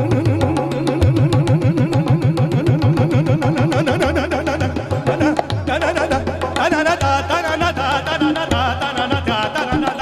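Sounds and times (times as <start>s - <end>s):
tabla fast rhythm: 0.0s - 10.0s.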